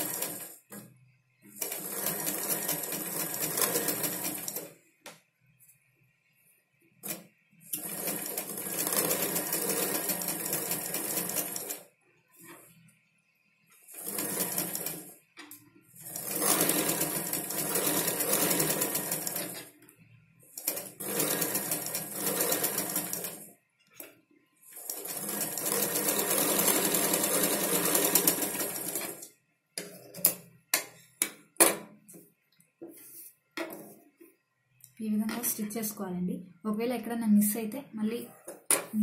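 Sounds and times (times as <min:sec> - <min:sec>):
sewing machine running: 0:00.0 - 0:00.8, 0:01.5 - 0:04.7, 0:07.0 - 0:11.8, 0:13.9 - 0:15.2, 0:16.0 - 0:19.7, 0:20.6 - 0:23.5, 0:24.7 - 0:29.2.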